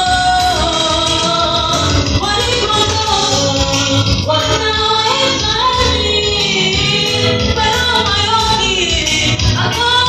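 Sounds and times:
live band playing: 0.0 - 10.0
woman singing gospel song: 0.0 - 10.0.

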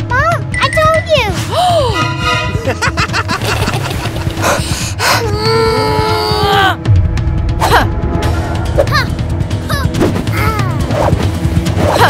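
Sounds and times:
girl wailing: 5.0 - 6.8.

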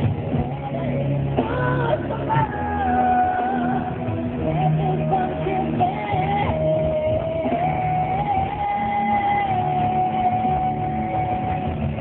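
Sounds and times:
live pop-rock band: 0.0 - 12.0.

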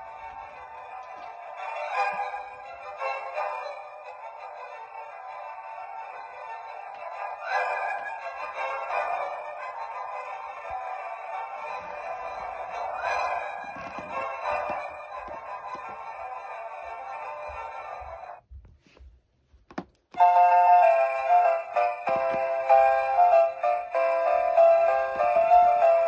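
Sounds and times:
tinny christmas music from small speaker: 0.0 - 18.4, 20.2 - 26.0.

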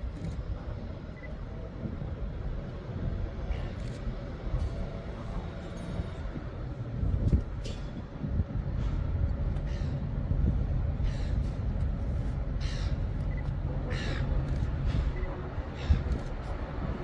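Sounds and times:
railcar low rumble: 0.0 - 17.0
crow cawing: 12.6 - 13.0, 13.9 - 14.3.

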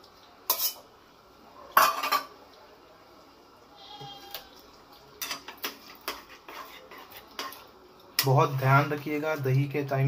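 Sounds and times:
metal spatula scraping a pan: 0.5 - 0.8, 5.2 - 9.0.

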